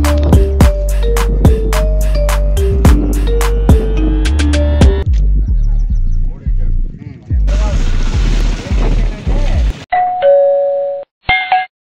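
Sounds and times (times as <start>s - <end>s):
wind rumbling on microphone: 5.1s - 9.8s
ding-dong doorbell chime: 9.9s - 11.7s.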